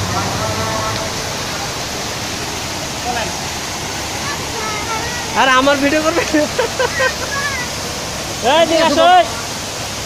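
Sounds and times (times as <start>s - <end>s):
fountain water splashing: 0.0s - 10.0s.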